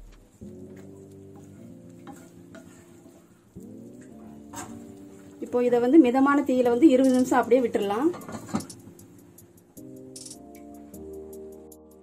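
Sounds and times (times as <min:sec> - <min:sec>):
gravy sizzling: 0:00.0 - 0:11.7
wooden spatula scraping pan: 0:00.4 - 0:05.8, 0:06.9 - 0:08.7.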